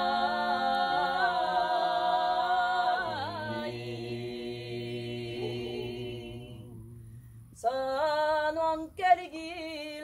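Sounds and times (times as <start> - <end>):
voices singing in harmony: 0.0 - 10.0.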